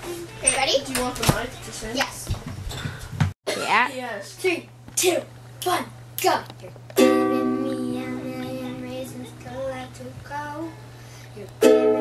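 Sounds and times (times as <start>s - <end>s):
ukulele chord strummed: 7.0s - 9.4s, 11.6s - 12.0s.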